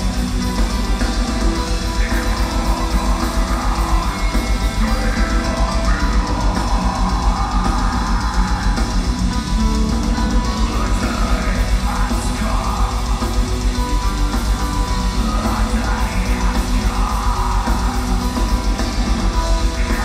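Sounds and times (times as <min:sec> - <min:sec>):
distorted electric guitars: 0:00.0 - 0:20.0
fast drumming: 0:00.0 - 0:20.0.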